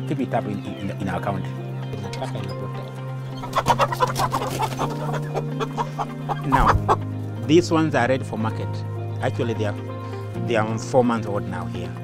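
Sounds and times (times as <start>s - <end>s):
chickens clucking: 2.0s - 7.1s.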